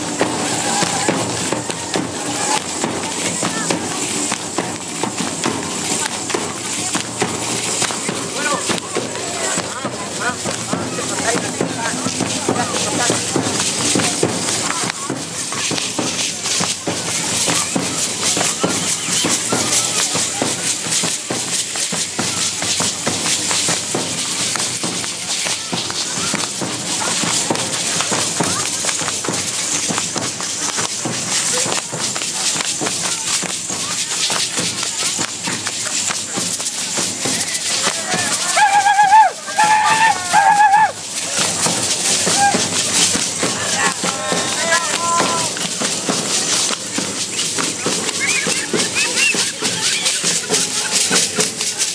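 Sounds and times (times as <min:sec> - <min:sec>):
feet stamping on dirt: 0:00.0 - 0:20.1, 0:22.1 - 0:51.9
costume fringes rattling: 0:00.0 - 0:51.9
hand rattles clattering: 0:00.0 - 0:51.9.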